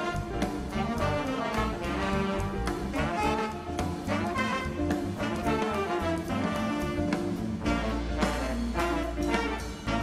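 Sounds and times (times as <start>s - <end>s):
bass: 0.0s - 10.0s
drum kit: 0.0s - 10.0s
horn section playing: 0.0s - 10.0s
piano: 0.0s - 10.0s.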